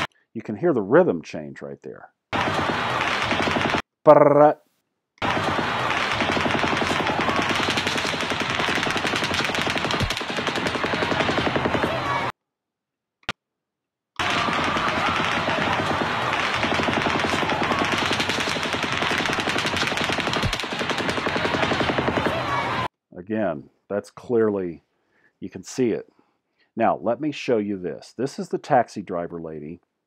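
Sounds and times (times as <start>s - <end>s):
automatic gunfire: 2.4s - 3.8s, 5.2s - 12.3s, 14.2s - 22.9s.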